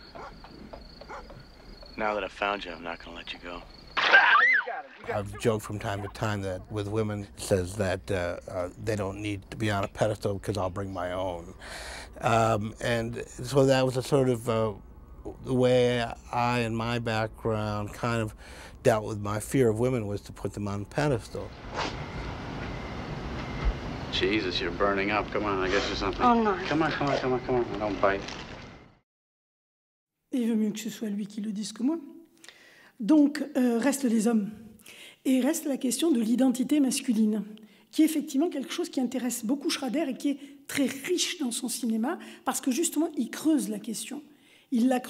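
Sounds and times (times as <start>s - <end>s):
crickets chirping: 0.0s - 28.9s.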